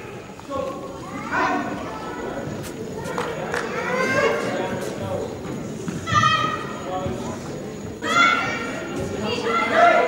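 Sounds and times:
chatter echoing in a hall: 0:00.0 - 0:10.0.

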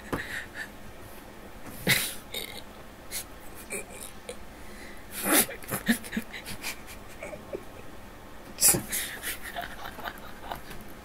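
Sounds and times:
man laughing breathily: 0:00.0 - 0:00.8, 0:05.1 - 0:07.9, 0:08.6 - 0:10.8.

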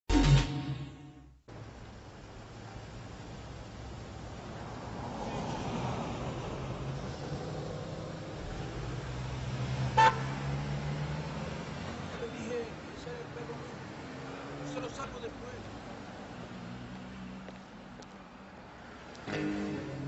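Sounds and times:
cars passing: 0:01.5 - 0:20.0
car horn toot: 0:09.9 - 0:10.4.

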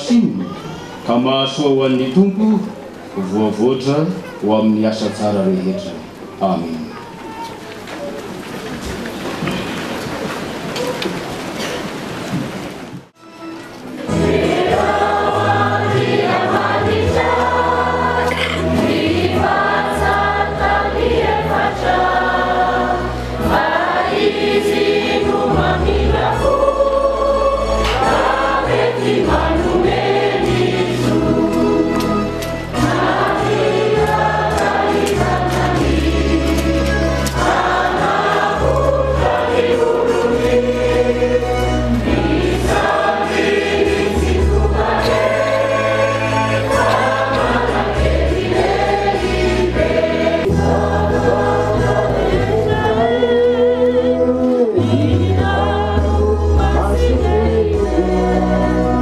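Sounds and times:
choir singing a hymn: 0:14.0 - 0:59.0.

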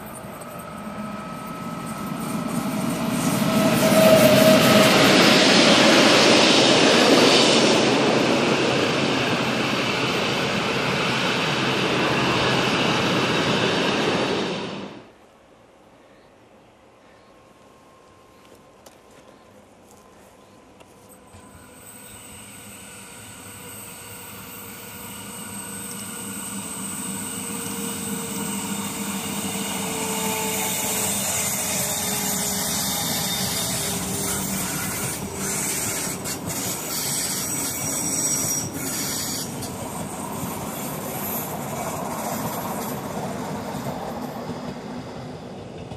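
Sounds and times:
high wheel squeal: 0:00.0 - 0:05.7, 0:21.2 - 0:42.9
train wheels running on rails: 0:00.0 - 0:15.0, 0:20.8 - 0:45.9.

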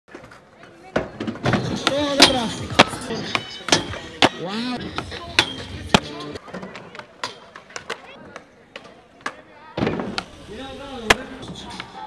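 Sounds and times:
voices calling out: 0:01.7 - 0:12.0.

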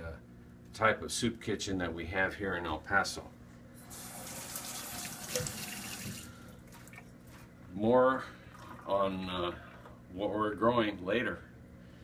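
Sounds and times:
faucet running into metal sink: 0:03.9 - 0:06.3.

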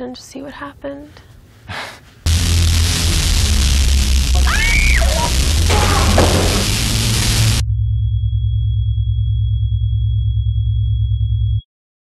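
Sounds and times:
loud noisy rush: 0:02.3 - 0:07.6
deep rumble: 0:02.3 - 0:08.1
low pulsing drone: 0:02.3 - 0:11.6.

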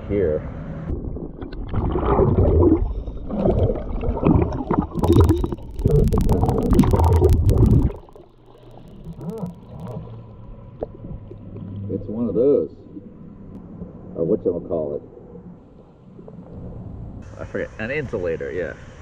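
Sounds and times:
underwater rumbling and gurgling: 0:00.0 - 0:17.2
sharp underwater clicks: 0:02.8 - 0:10.1.

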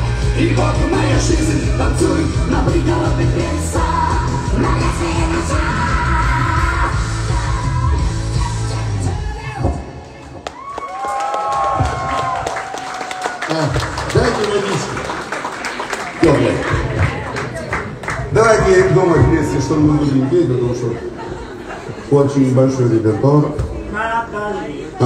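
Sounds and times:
bass-heavy pop backing track: 0:00.0 - 0:10.4
man singing lead vocal: 0:00.0 - 0:10.5
women singing backing vocals: 0:00.4 - 0:09.9.

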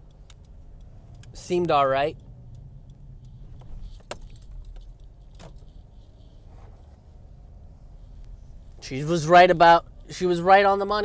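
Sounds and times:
light clicks or rattles: 0:00.0 - 0:07.0
road rumble in car cabin: 0:00.0 - 0:11.0.

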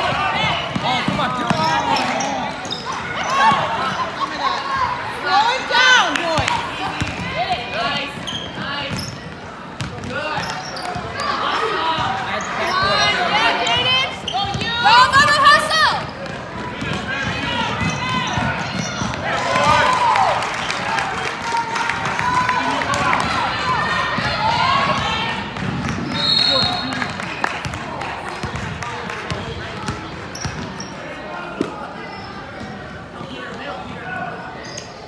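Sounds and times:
voices in a large gym: 0:00.0 - 0:35.0.

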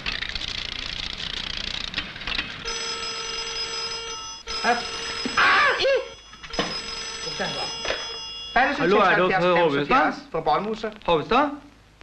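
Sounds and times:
telephone bell ringing: 0:02.6 - 0:09.3.

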